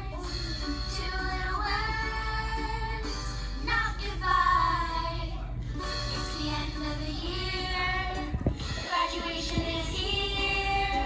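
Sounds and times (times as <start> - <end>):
instrumental backing music: 0.0 - 11.0
child singing: 6.2 - 11.0.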